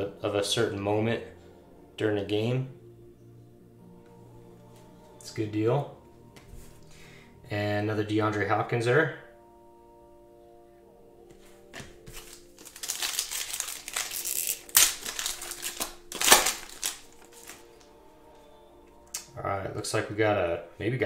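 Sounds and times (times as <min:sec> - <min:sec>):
foil wrapper crinkling: 0:12.1 - 0:17.8
foil wrapper ripping: 0:12.1 - 0:17.8.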